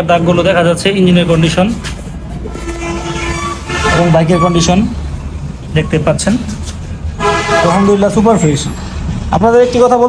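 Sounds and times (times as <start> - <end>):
low traffic rumble: 0.0 - 10.0
horn sounding: 2.4 - 5.0, 7.1 - 8.7.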